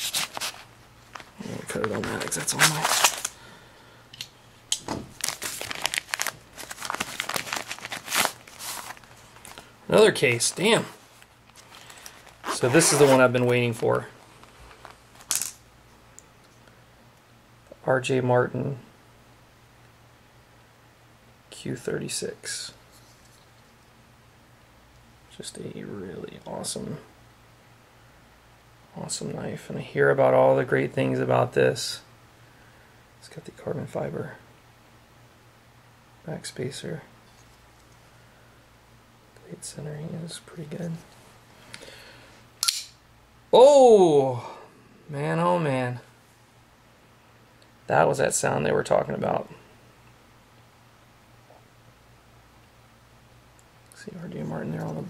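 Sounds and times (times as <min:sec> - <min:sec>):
knife blade snapping open: 0:42.6 - 0:42.9.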